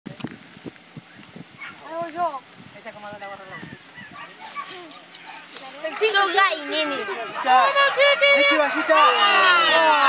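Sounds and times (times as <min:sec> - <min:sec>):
dogs barking: 0:01.6 - 0:01.8, 0:03.5 - 0:09.8.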